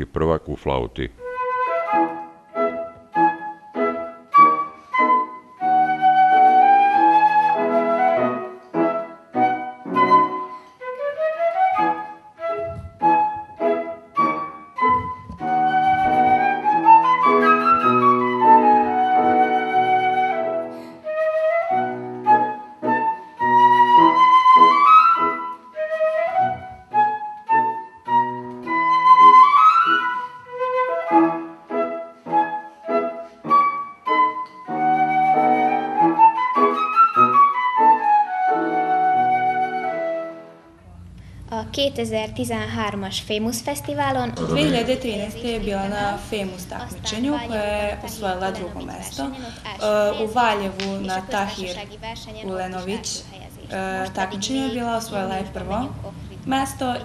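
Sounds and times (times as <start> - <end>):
flute playing classical piece: 1.2 - 40.8.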